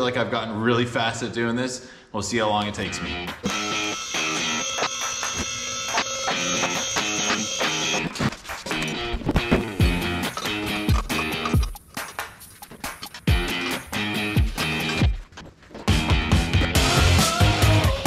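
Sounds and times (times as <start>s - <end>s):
guitar music with a beat: 2.8s - 5.3s, 8.7s - 18.0s.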